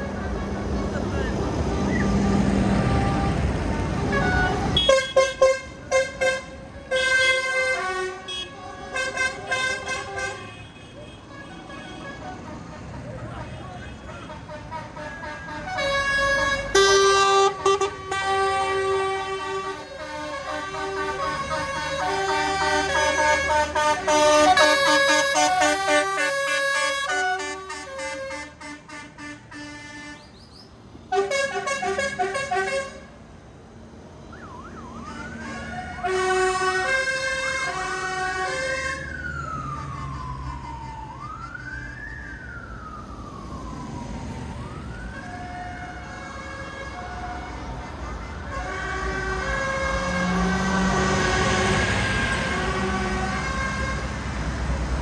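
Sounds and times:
horn toots: 0.0 - 30.3, 31.1 - 33.1
tractor engines rumbling: 0.0 - 55.0
siren wailing: 34.2 - 47.8.

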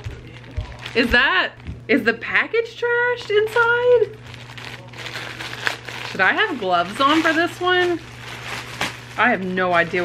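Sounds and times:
plastic bag crinkling: 0.0 - 1.8, 3.1 - 10.0.

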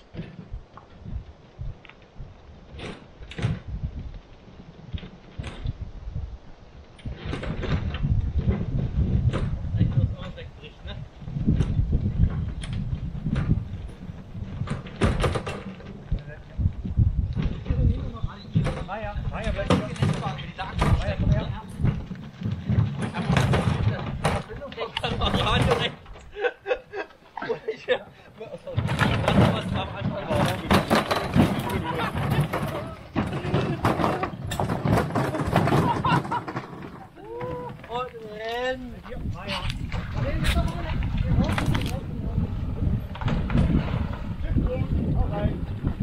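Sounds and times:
cart wheels rumbling over rock: 6.8 - 26.4, 28.4 - 46.0
knocks and rattles of carts: 7.1 - 10.4, 11.4 - 26.3, 28.4 - 46.0
people's voices: 23.0 - 45.7.

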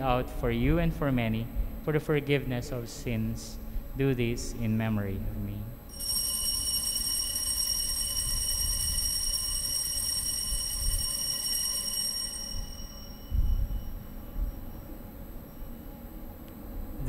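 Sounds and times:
altar bell ringing: 5.9 - 15.9.

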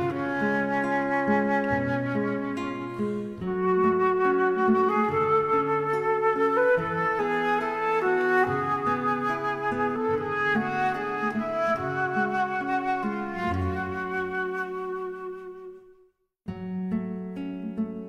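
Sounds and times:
instrumental music with flute: 0.0 - 16.2.

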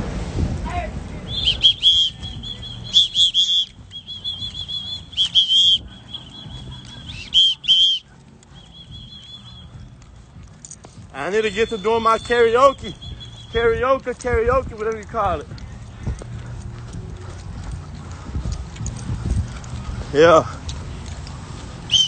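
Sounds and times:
songbird chirping: 1.3 - 10.0, 11.4 - 14.0.

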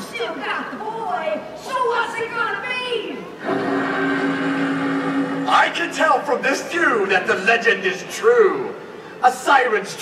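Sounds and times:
held low chord over loudspeakers: 3.4 - 7.3.

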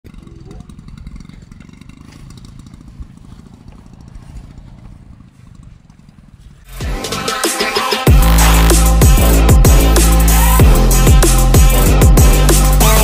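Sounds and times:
wind buffeting microphone: 0.1 - 6.7.

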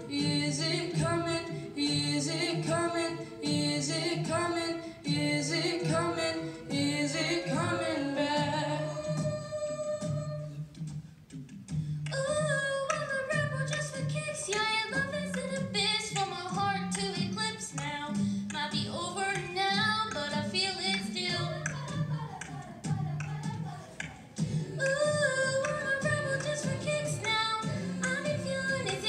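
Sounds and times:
children's choir singing pop song: 0.0 - 10.6, 12.1 - 29.0
girl singing into microphone: 0.0 - 10.7, 12.1 - 29.0
accompaniment with steady beat: 0.0 - 12.1, 21.5 - 29.0.

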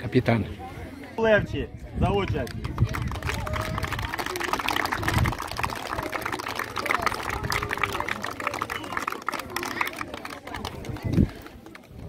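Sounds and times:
crowd applauding: 2.4 - 12.0.

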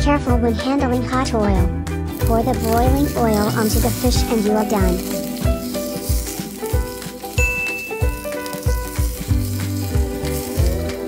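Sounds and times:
background music with a beat: 0.0 - 11.0
hot oil sizzling: 2.0 - 11.0.

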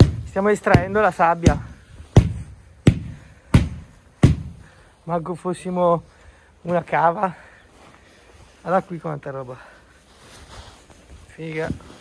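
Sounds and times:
sharp thumps on turf: 0.0 - 4.7.

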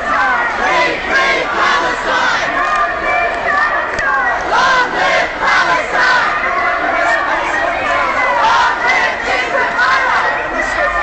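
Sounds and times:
crowd shouting: 0.0 - 11.0.

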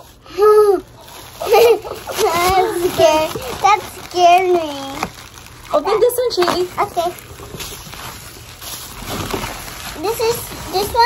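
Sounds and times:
bubble wrap rustling and crinkling: 0.0 - 11.0.

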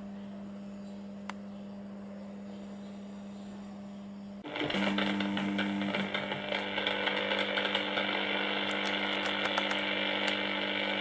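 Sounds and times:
radio speaker crackling buzz: 4.4 - 11.0.

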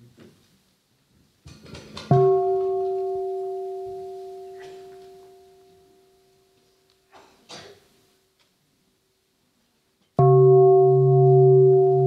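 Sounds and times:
meditation bell ringing: 2.1 - 6.2, 10.2 - 12.0.

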